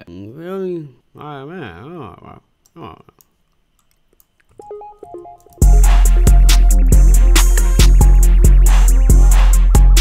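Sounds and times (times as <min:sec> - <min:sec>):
soft synth melody trap beat: 0:04.6 - 0:10.0.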